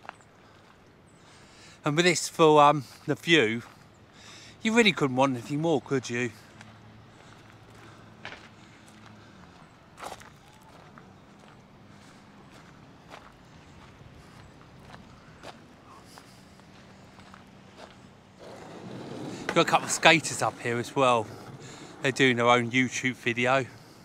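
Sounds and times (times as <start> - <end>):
footsteps on gravel: 2.8 - 4.0, 6.2 - 22.8.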